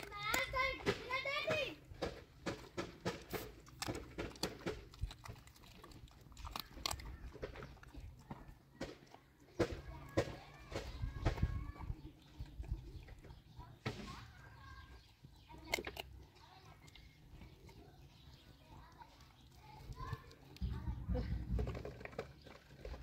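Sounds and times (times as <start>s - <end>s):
dog chewing and crunching: 0.0s - 23.0s
teeth clicking on metal bowl: 2.0s - 23.0s
faint voices: 4.9s - 23.0s.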